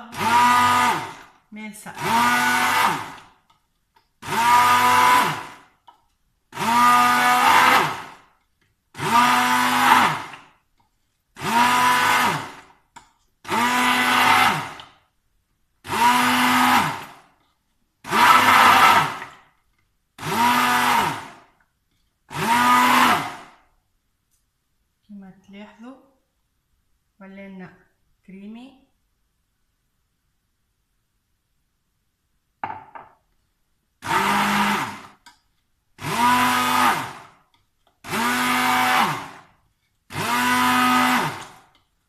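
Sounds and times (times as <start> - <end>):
immersion blender pulsing: 0.0 - 1.3, 1.9 - 3.3, 4.2 - 5.7, 6.6 - 8.2, 9.0 - 10.5, 11.4 - 12.7, 13.4 - 15.0, 15.8 - 17.2, 18.0 - 19.4, 20.2 - 21.5, 22.3 - 23.6, 34.0 - 35.2, 36.0 - 37.4, 38.0 - 39.5, 40.1 - 41.7.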